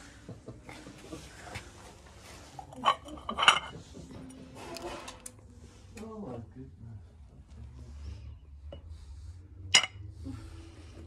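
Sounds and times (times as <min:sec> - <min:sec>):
glass ashtrays clinking: 0:02.7 - 0:03.8, 0:09.8 - 0:10.0.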